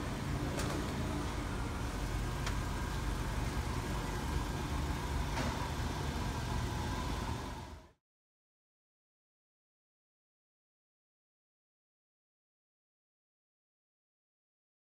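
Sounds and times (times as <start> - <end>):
car engine idling: 0.0 - 8.0.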